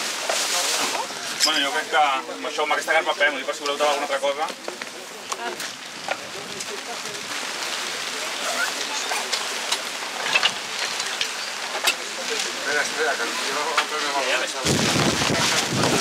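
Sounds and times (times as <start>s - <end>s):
steady rain falling: 0.0s - 16.0s.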